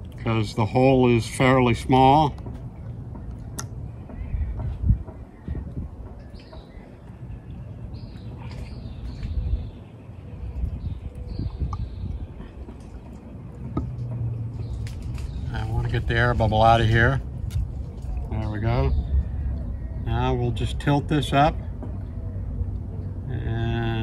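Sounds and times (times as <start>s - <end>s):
wind rumbling on microphone: 0.0s - 23.2s
low steady hum: 0.0s - 24.0s.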